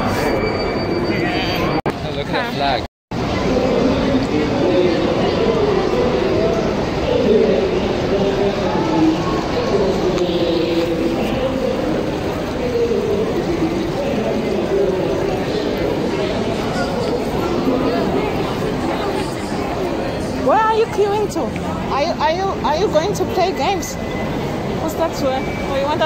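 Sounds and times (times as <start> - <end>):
crowd babble: 0.0 - 26.0.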